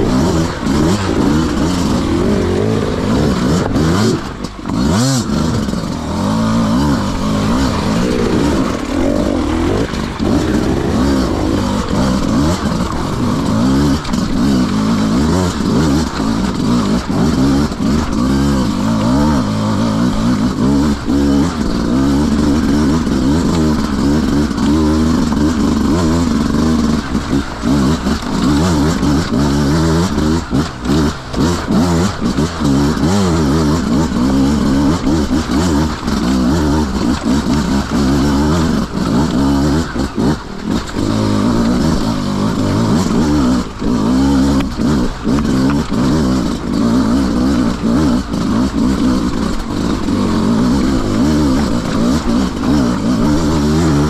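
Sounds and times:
dirt bike engine revving: 0:00.0 - 0:54.0.

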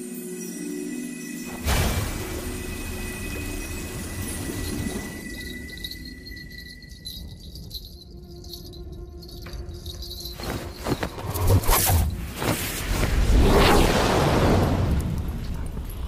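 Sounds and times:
shimmering chime-like magical tone: 0:00.0 - 0:12.3.

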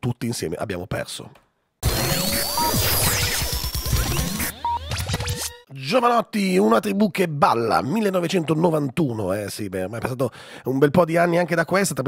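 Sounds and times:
electronic music: 0:01.8 - 0:05.7.

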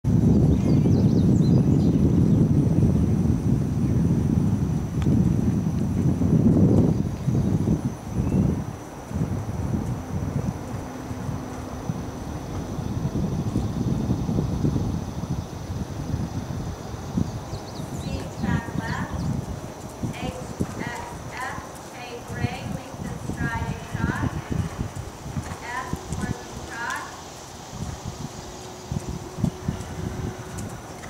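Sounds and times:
muffled horse hoofbeats: 0:04.9 - 0:14.7, 0:17.3 - 0:31.0
loud low rumble: 0:06.1 - 0:21.6.

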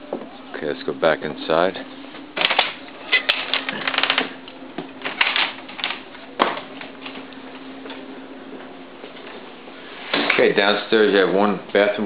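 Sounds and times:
steady low hum: 0:00.0 - 0:12.0
footsteps on floor: 0:06.4 - 0:09.4.

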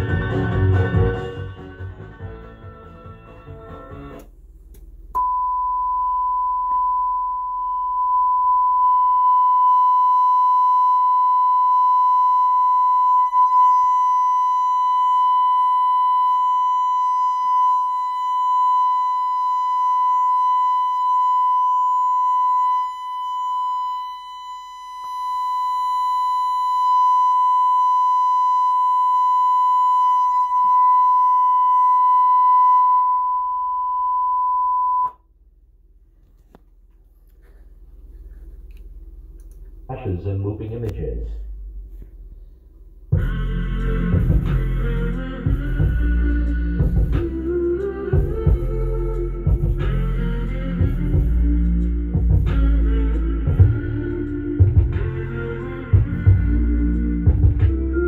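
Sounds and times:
sine-wave test tone: 0:05.1 - 0:35.3.

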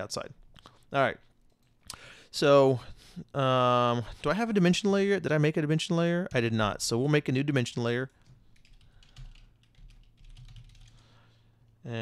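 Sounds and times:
keyboard typing: 0:08.1 - 0:11.1.

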